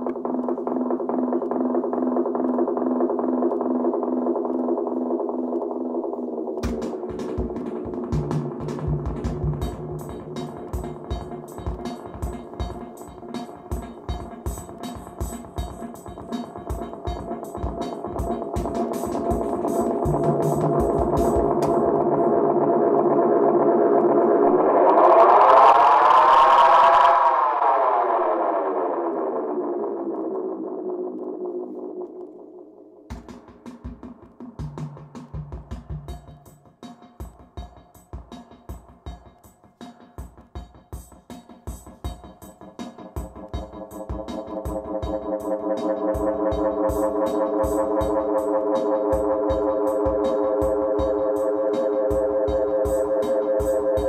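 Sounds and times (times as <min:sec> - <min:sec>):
drum machine rapid hits: 0:00.0 - 0:22.4, 0:33.1 - 0:54.0
tape echo feedback drone: 0:00.0 - 0:33.1, 0:43.4 - 0:54.0.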